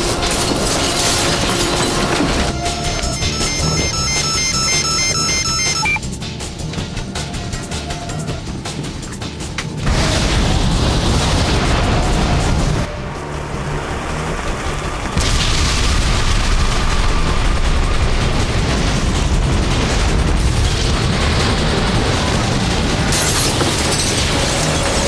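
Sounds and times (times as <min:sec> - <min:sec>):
volcanic eruption rumble: 0:09.8 - 0:24.0.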